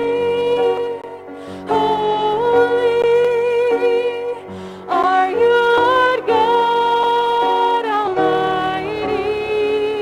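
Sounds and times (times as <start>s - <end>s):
woman singing worship song: 1.7s - 10.0s.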